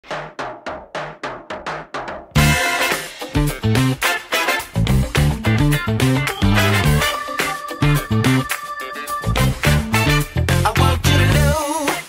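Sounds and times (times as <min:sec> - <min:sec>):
funk band music: 0:02.3 - 0:12.0
electric bass punchy notes: 0:02.4 - 0:02.8, 0:03.4 - 0:04.0, 0:04.8 - 0:07.1, 0:09.3 - 0:11.6.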